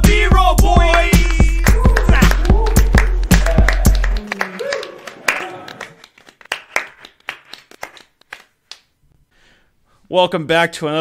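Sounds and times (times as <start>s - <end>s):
scattered hand claps: 0.8s - 8.9s.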